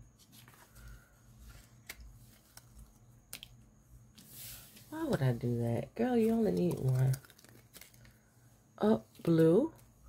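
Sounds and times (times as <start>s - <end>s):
soft rustle: 0.2s - 3.0s, 4.1s - 10.0s
hands and paper clicking on tabletop: 0.3s - 4.3s, 6.1s - 8.2s.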